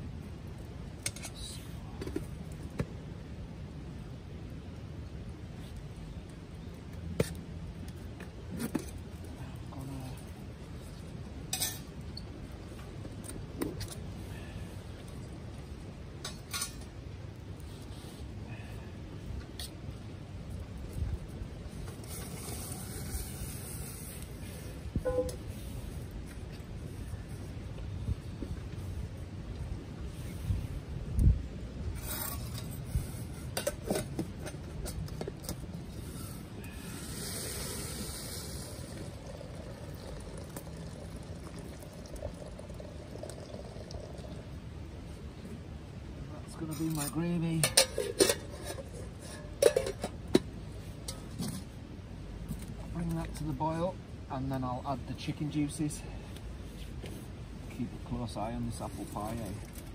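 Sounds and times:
campfire crackling: 0.0 - 59.9
metal camp pots clinking: 1.0 - 2.4, 11.4 - 14.0, 16.1 - 17.0, 31.9 - 35.9, 46.5 - 51.8
wind rumble on microphone: 19.9 - 36.7.

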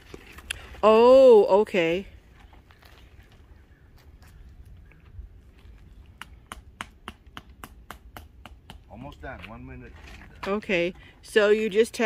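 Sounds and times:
hammer tapping tent stake: 6.2 - 8.9.

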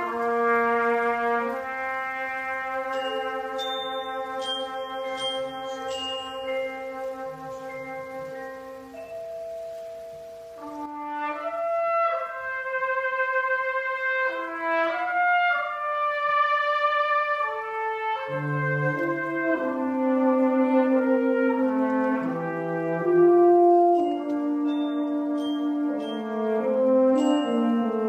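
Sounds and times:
brass band playing: 0.0 - 28.0.

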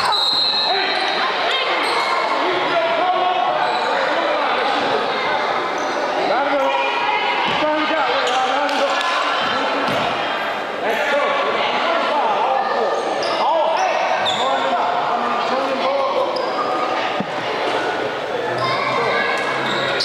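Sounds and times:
many voices chattering and shouting: 0.0 - 20.0.

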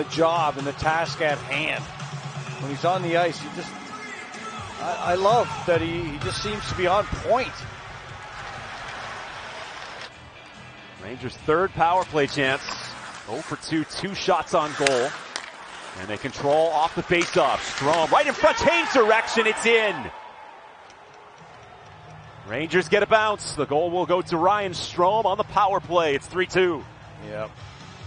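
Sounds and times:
skates scraping ice: 8.3 - 10.2, 11.8 - 20.0
sticks clattering on puck: 11.8 - 13.6, 14.4 - 19.0.

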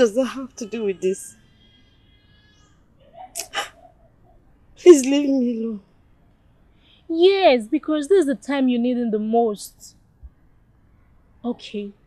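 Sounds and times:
woman sobbing: 3.2 - 4.0.

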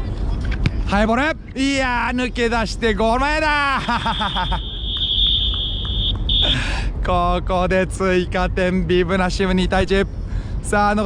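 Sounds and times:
referee whistle blasts: 4.2 - 6.6.

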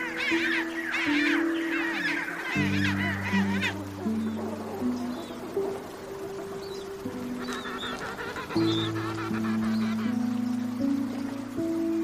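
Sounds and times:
penguins calling: 0.0 - 10.5
low sustained background music: 0.0 - 12.0.

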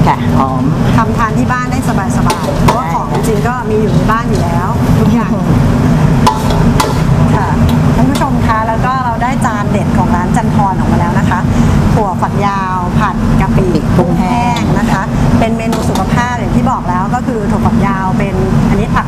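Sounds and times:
voices talking: 0.0 - 5.6, 7.3 - 19.0
low machine rumble: 0.0 - 19.0.

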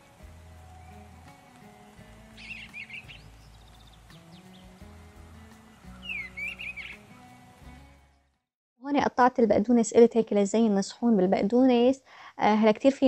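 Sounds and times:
music of low held notes: 0.0 - 8.3
bird chirps: 2.3 - 7.1.

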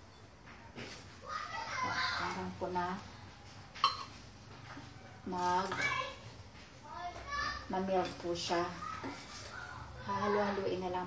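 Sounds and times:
wooden spoon stirring in metal pot: 0.0 - 11.0.

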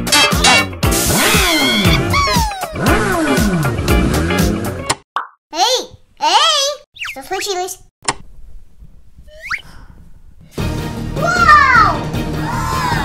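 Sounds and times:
lively background music: 0.0 - 4.9, 10.6 - 13.0
sliding falling cartoon tones: 1.2 - 2.9, 7.0 - 7.6, 9.2 - 9.7
squeaky wobbling voice effects: 1.3 - 2.8, 7.0 - 7.6, 9.3 - 9.7.

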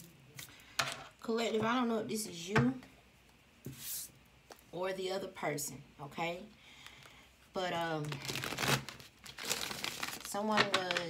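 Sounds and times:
cards being shuffled: 8.2 - 11.0.

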